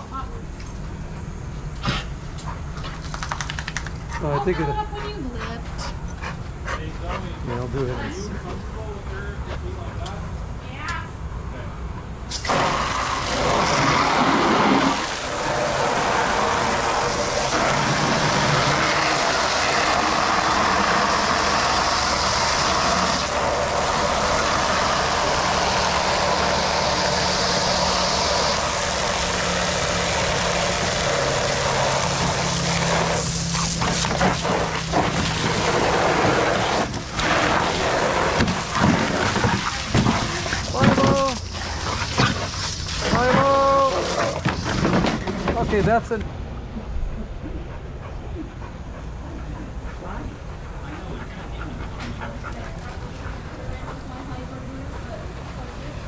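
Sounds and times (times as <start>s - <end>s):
water gushing from a hose: 12.3s - 45.9s.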